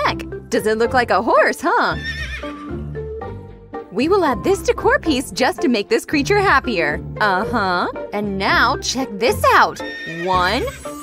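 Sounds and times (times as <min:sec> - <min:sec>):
background music: 0:00.0 - 0:11.0
horse whinnying: 0:01.9 - 0:02.8, 0:09.7 - 0:11.0.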